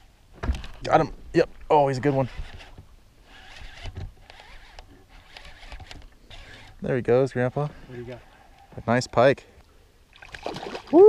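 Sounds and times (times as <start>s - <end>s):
fishing reel and rod handling: 2.2s - 6.8s
small reel clicks: 2.2s - 6.8s.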